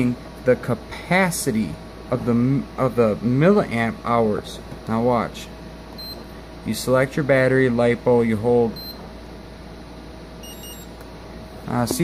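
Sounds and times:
electrical hum and hiss: 0.0 - 12.0
faint high beeps: 10.4 - 10.9.

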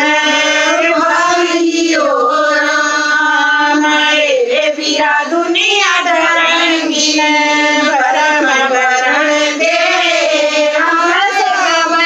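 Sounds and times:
woman singing unaccompanied: 0.0 - 12.0.

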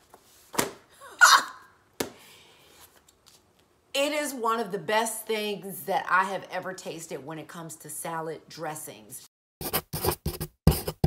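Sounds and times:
soft book handling sounds: 0.0 - 0.8, 2.7 - 3.7.

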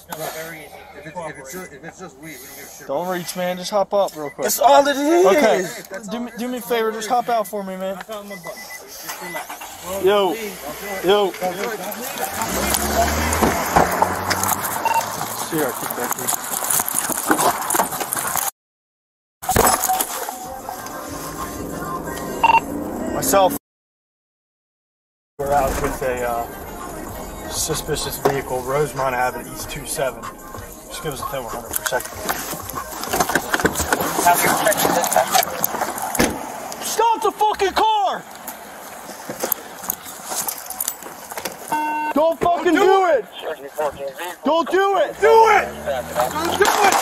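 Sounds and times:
voices: 0.0 - 18.4, 19.5 - 23.6, 25.4 - 47.0
short electronic beep: 14.8 - 15.1, 22.4 - 22.7, 41.7 - 42.2.

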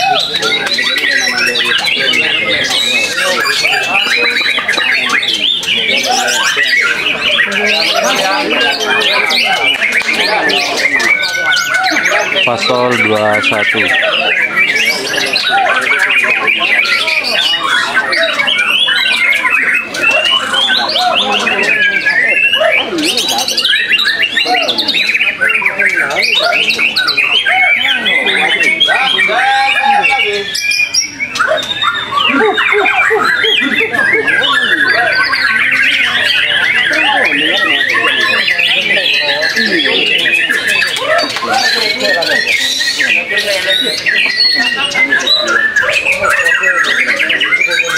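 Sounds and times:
other songbirds singing: 0.0 - 47.9.

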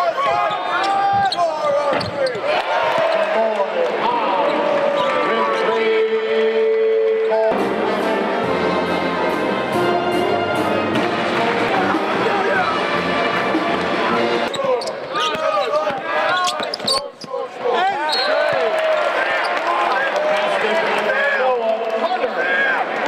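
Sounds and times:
voices of players and crowd: 0.0 - 23.0
sneaker squeaks: 0.2 - 2.4, 14.5 - 18.6
loud music with brass: 7.4 - 14.5.

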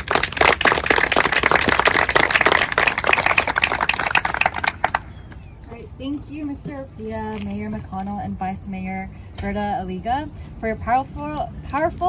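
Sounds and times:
audience applauding: 0.0 - 5.0.

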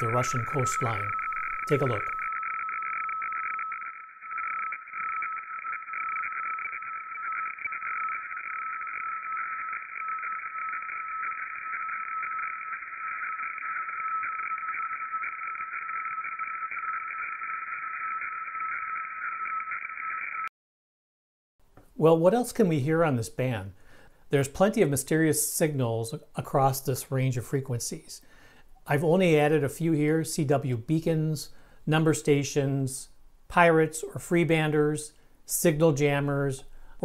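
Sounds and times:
constant low tone: 0.0 - 19.9
rasping radiofax tone band: 0.0 - 20.5.

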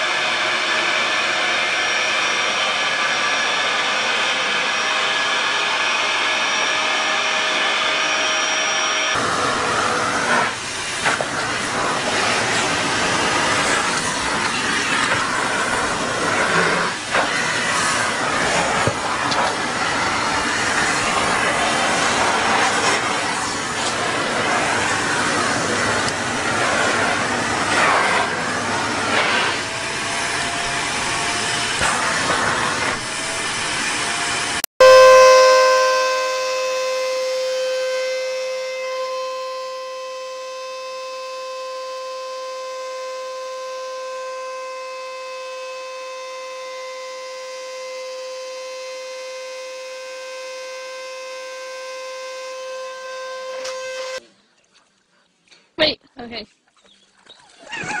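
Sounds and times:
vacuum cleaner suction rush: 0.0 - 54.2
vacuum motor whine: 0.0 - 54.2.

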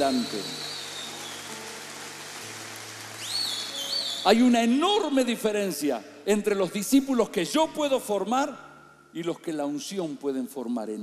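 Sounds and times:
steady hiss: 0.0 - 5.1.

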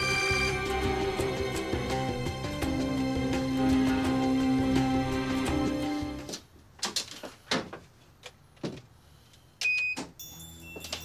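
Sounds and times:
high electronic beep: 0.0 - 1.0
soft music: 0.0 - 6.3.

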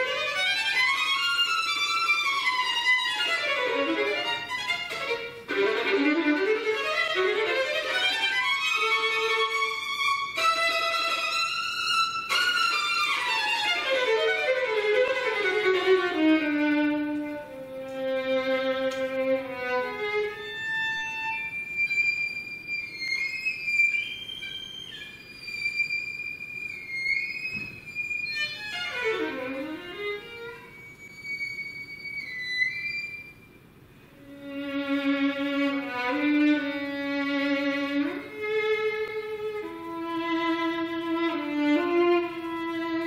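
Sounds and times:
solo violin playing: 0.0 - 43.0.

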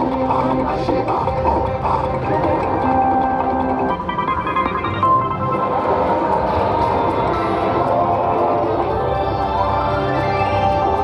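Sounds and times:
slot machine bonus music: 2.6 - 8.7.

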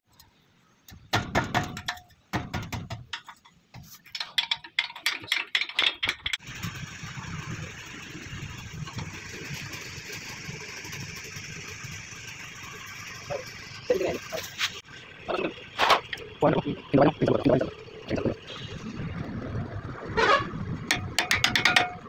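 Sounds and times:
mechanical running noise: 6.4 - 21.2
metal tools clinking on hub: 20.9 - 22.0.

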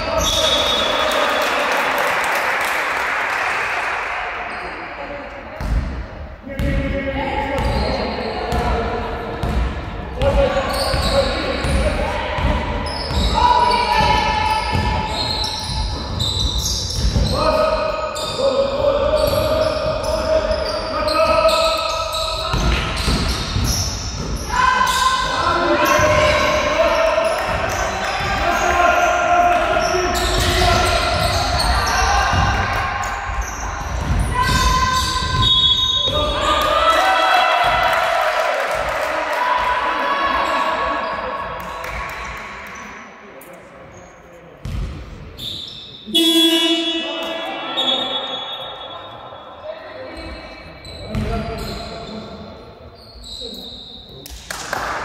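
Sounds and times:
basketball bouncing on wooden court: 5.6 - 6.0, 6.6 - 17.4, 22.4 - 24.5, 25.8 - 26.6, 29.8 - 36.7, 44.6 - 45.2, 51.0 - 51.8
players calling out: 10.2 - 42.0.

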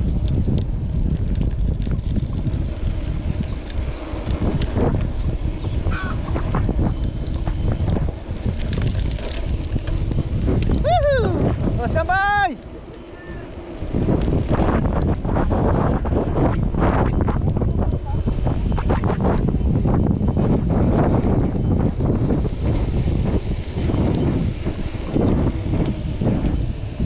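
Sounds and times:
bike rolling on concrete: 0.0 - 27.0
wind buffeting microphone: 0.0 - 27.0.

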